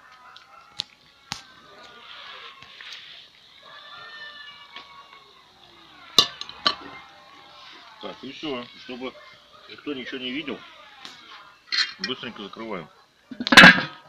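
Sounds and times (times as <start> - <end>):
metal skimmer clinking on cast iron: 6.2 - 7.0, 11.7 - 12.2.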